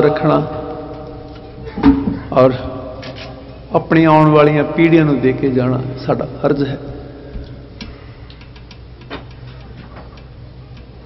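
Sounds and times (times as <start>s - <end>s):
small clicks and taps: 7.4s - 10.9s.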